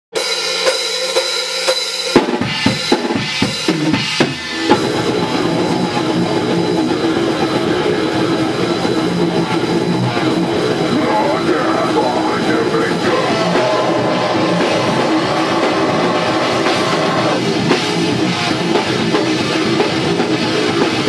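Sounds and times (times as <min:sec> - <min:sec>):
heavy metal band playing live: 0:00.1 - 0:21.0
heavy drum hits: 0:02.0 - 0:21.0.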